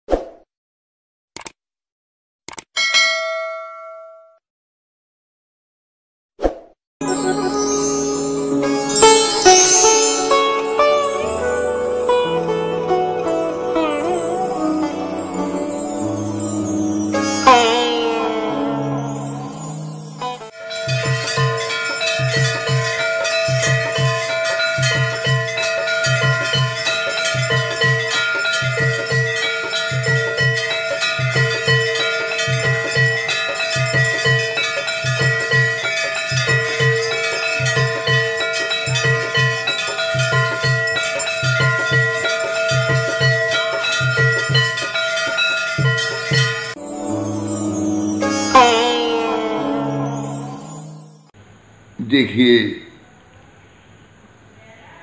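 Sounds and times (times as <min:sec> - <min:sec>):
quick double clicks: 0:01.4 - 0:01.6, 0:02.5 - 0:02.7
bell notification chime: 0:07.0 - 0:51.3.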